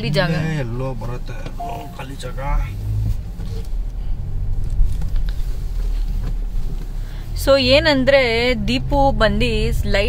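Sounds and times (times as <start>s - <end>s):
engine and tyre rumble: 0.0s - 10.0s.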